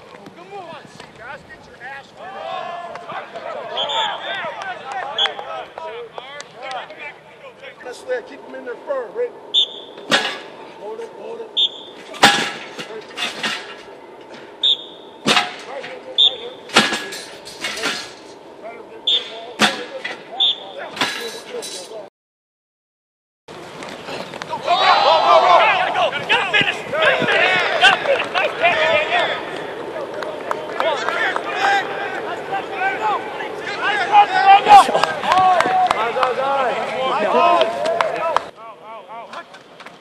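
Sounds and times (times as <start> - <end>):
people calling out: 2.2 - 10.0, 24.5 - 39.6.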